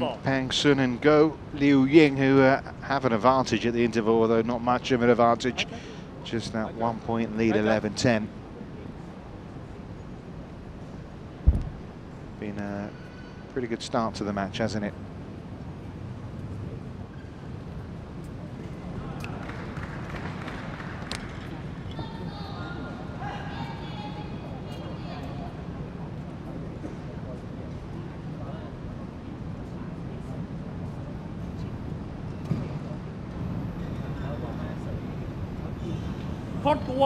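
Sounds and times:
crowd murmur: 17.8 - 37.0
faint indistinct voices talking: 21.5 - 37.0.

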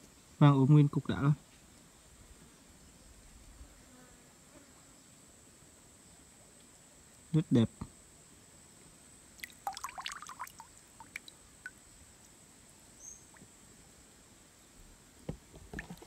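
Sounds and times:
stream water splashing and dripping: 9.3 - 12.4, 13.1 - 13.6, 15.5 - 16.0.

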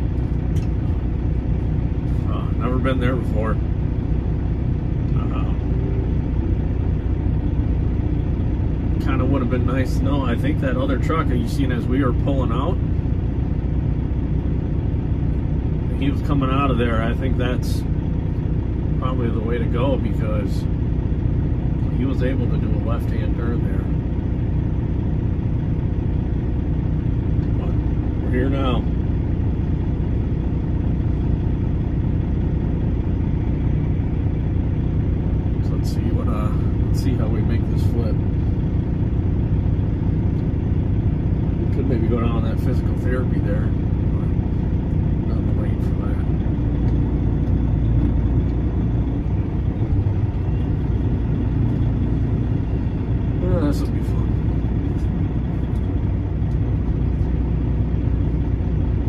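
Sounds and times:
diesel truck engine idling: 0.0 - 59.0.

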